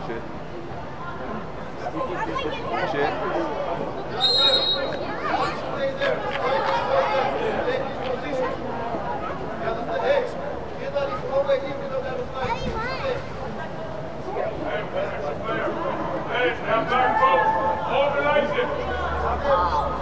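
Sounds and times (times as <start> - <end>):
people chattering and calling out: 0.0 - 20.0
referee's whistle blast: 4.2 - 5.0.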